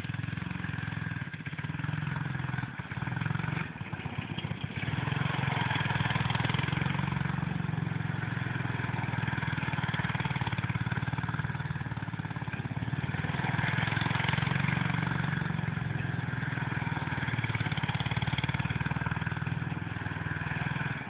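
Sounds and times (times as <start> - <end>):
go-kart engine running: 0.0 - 21.0.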